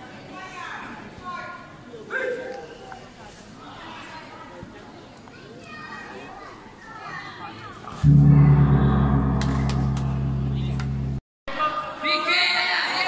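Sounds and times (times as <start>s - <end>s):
gong struck and ringing: 8.0s - 11.2s.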